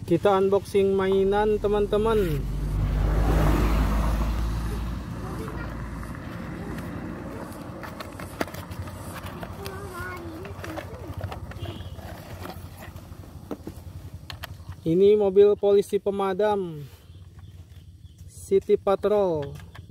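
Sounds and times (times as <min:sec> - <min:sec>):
cardboard box rustling: 0:07.4 - 0:14.0.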